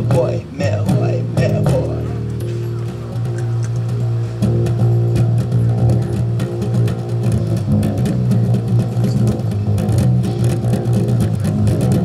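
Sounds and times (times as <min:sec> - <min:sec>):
electric bass guitar: 0:00.0 - 0:12.0
live rock band playing: 0:00.0 - 0:12.0.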